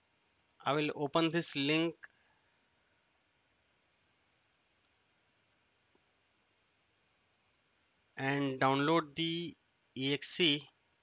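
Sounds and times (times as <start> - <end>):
faint clicks: 0.3 - 0.7, 4.7 - 5.3, 7.4 - 7.8.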